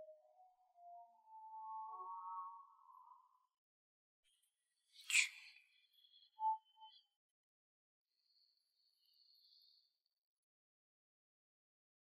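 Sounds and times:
soft sustained high tones: 0.0 - 3.5.

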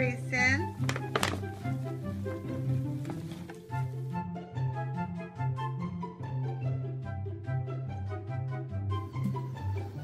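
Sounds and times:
background music: 0.0 - 10.0
cat thumping in paper bag: 0.8 - 3.7.

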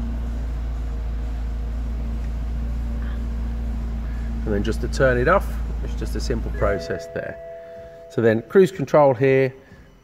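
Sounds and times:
car engine idling: 0.0 - 10.0
faint constant tone: 4.4 - 10.0.

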